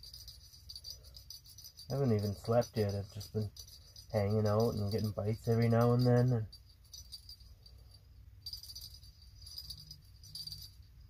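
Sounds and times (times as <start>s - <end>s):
low steady hum: 0.0s - 11.0s
small bell jingling: 0.0s - 11.0s.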